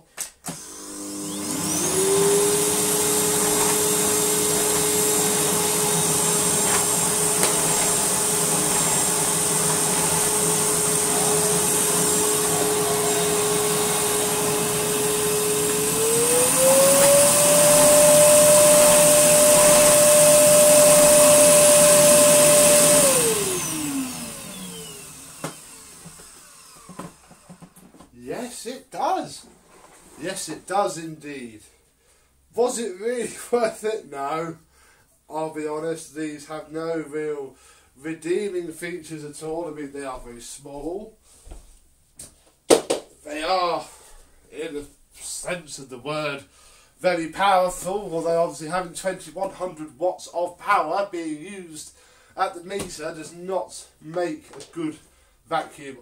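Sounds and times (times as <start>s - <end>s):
vacuum cleaner motor whine: 0.5s - 27.9s.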